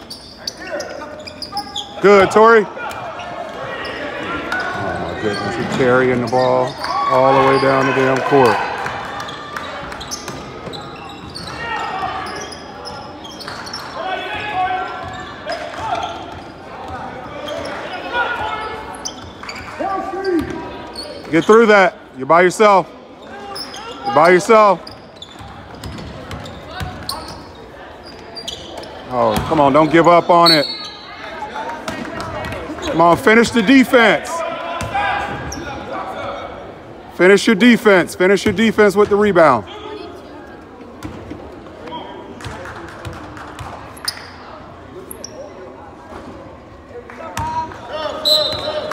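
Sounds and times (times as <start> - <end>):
distant shouts and voices: 0.0 - 25.7, 26.4 - 40.7, 46.9 - 48.9.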